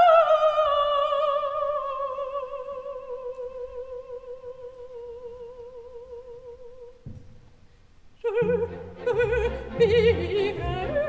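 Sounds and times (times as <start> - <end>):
soprano voice singing with vibrato: 0.0 - 7.1, 8.2 - 11.0.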